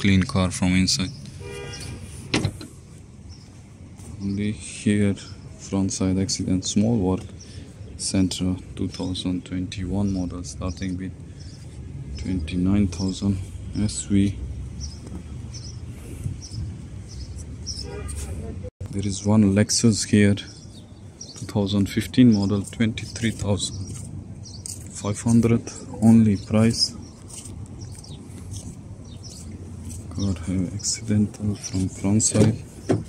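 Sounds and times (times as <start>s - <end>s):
birds chirping: 0.0s - 33.0s
faint car horn toot: 1.4s - 2.0s, 17.8s - 18.5s
car door shutting with thud: 2.3s - 2.7s, 32.4s - 33.0s.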